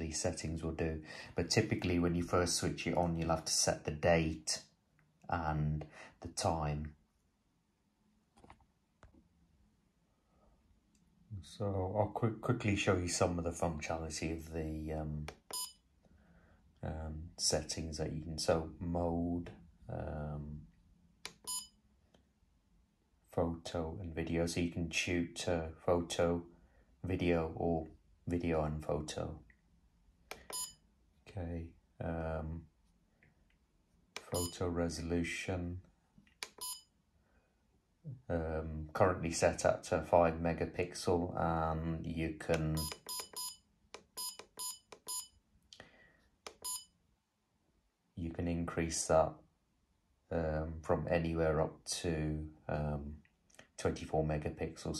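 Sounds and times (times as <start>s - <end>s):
high electronic beeps: 30.5s - 30.7s, 42.8s - 43.6s, 44.2s - 45.3s
short electronic beep: 30.5s - 30.8s, 36.6s - 36.9s, 44.2s - 45.3s, 46.6s - 46.9s.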